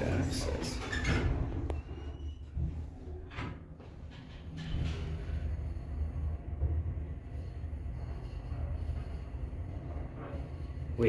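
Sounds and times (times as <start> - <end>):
elevator car humming: 0.0 - 11.0.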